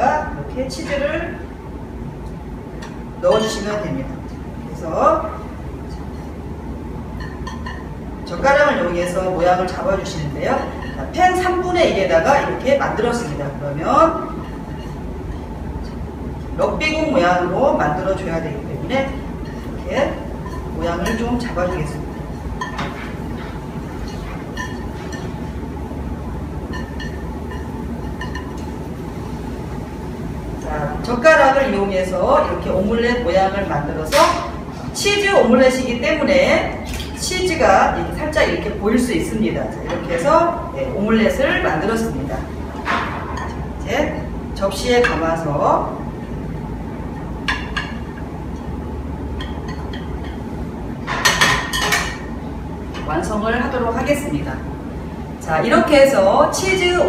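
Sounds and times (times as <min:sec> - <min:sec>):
low background hum: 0:00.0 - 0:57.0
pan and chopsticks clinking on plate: 0:26.7 - 0:28.7.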